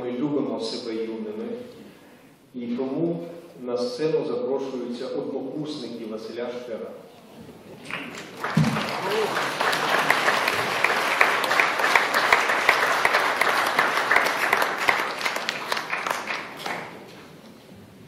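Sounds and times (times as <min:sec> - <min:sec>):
audience applauding: 0:07.7 - 0:17.1.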